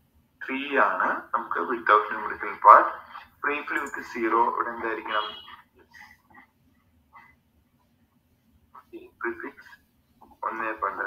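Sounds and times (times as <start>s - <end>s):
person talking over video call: 0.4s - 5.7s, 8.8s - 11.0s.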